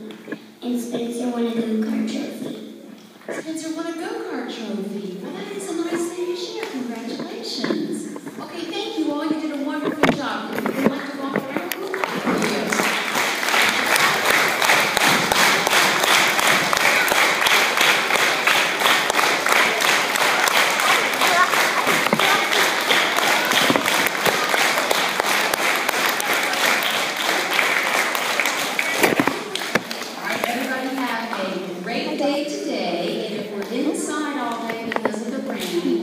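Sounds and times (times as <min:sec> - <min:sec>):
crowd applauding in a hall: 0:11.8 - 0:30.8.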